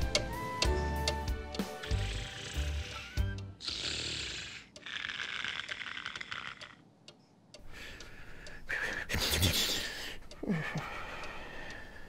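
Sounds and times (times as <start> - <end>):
light background music: 0.0 - 3.6
cartoon snoring: 1.8 - 6.8.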